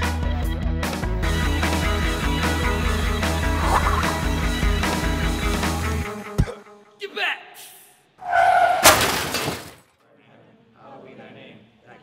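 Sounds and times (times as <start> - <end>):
glass breaking crash: 8.8 - 9.9.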